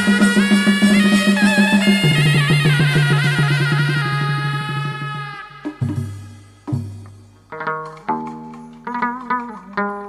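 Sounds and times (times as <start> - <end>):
percussion: 0.0 - 10.0
plucked lute: 6.7 - 10.0.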